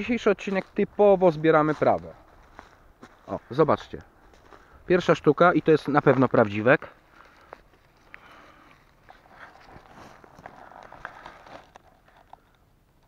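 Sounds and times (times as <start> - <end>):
dry leaves and twigs rustling: 0.0 - 13.0.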